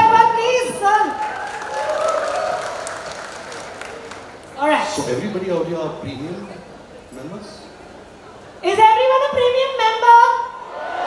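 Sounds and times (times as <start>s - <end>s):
audience applauding and cheering: 1.1s - 4.6s.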